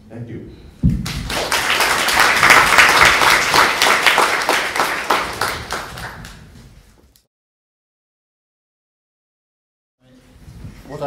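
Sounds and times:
audience applauding: 0:01.0 - 0:06.4.

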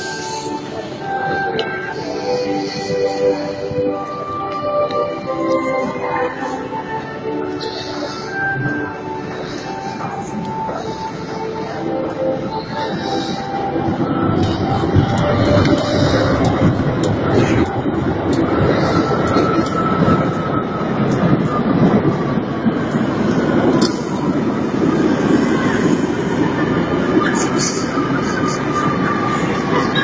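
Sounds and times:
train wheels rumbling on rail: 0:00.0 - 0:30.0.

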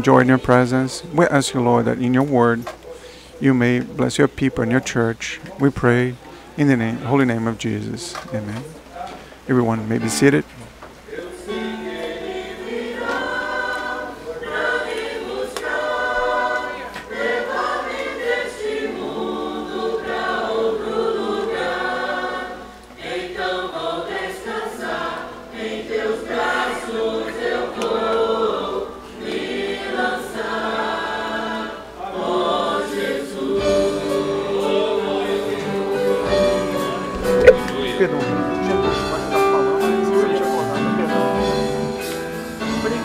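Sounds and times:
choir singing a hymn: 0:00.0 - 0:08.4, 0:11.0 - 0:43.0
singers breathing: 0:02.9 - 0:03.4, 0:06.2 - 0:06.6, 0:09.1 - 0:09.5.

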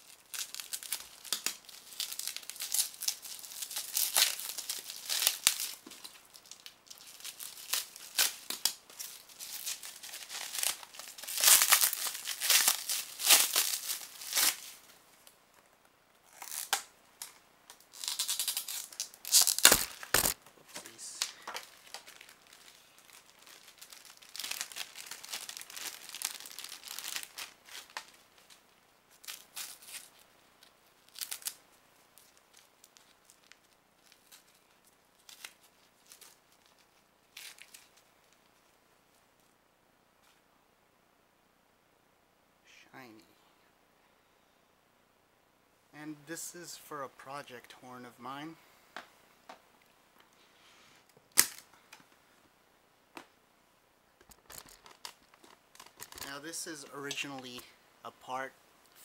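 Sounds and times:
bubble wrap crinkling and tearing: 0:00.0 - 0:14.9, 0:16.2 - 0:38.7, 0:51.0 - 0:51.9, 0:54.2 - 0:57.7.

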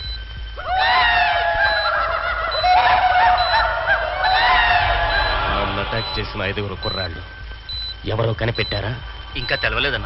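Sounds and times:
men laughing loudly: 0:01.2 - 0:06.1.

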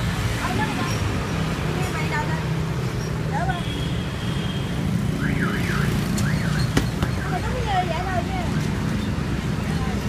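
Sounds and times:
street traffic rumble: 0:00.0 - 0:10.0.

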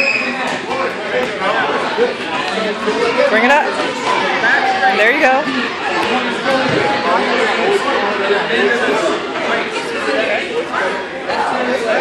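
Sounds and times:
high squeal: 0:00.0 - 0:00.4
crowd chattering in a gym: 0:00.0 - 0:12.0.

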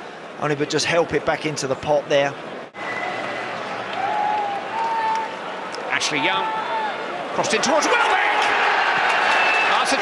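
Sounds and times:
stadium crowd roar: 0:02.4 - 0:10.0.

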